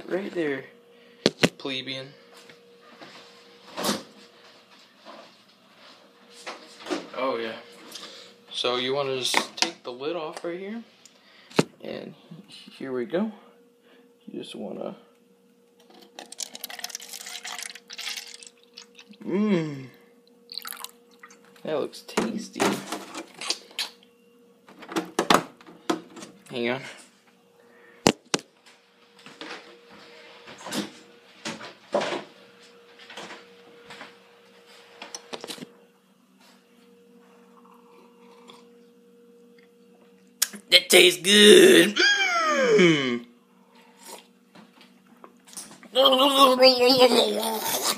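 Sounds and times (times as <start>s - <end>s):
faint steady hum: 0.0s - 47.9s
drink pouring into plastic cup: 16.0s - 19.2s, 20.5s - 21.4s.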